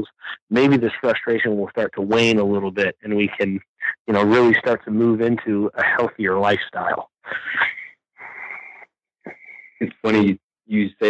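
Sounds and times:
person breathing into microphone: 0:07.3 - 0:09.8.

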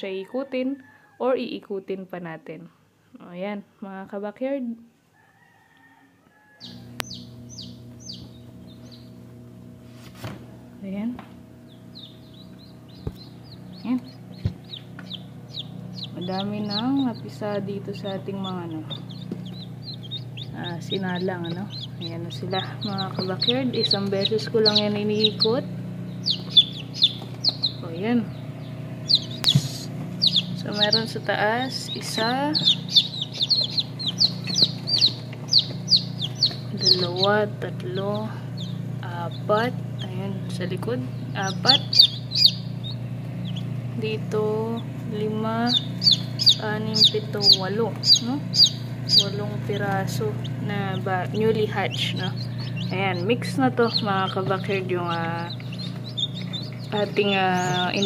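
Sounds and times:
chicks peeping: 0:06.4 - 0:58.0
incubator hum: 0:06.4 - 0:58.0.

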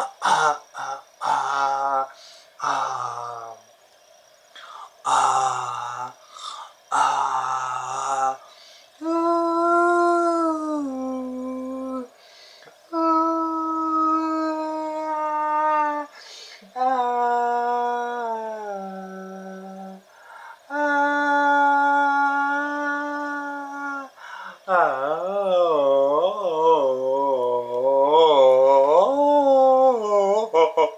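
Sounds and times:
man singing a cappella: 0:00.0 - 0:03.6, 0:05.0 - 0:12.2, 0:12.9 - 0:20.1, 0:20.7 - 0:30.9.

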